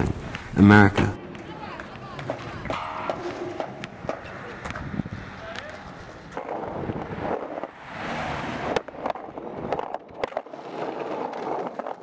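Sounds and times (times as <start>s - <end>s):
skateboard clacks: 0.0s - 12.0s
skateboard wheels rolling on concrete: 0.0s - 12.0s.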